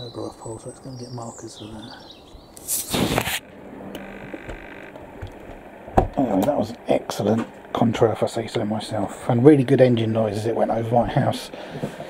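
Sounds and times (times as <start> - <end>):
faint steady whine: 0.0 - 12.0.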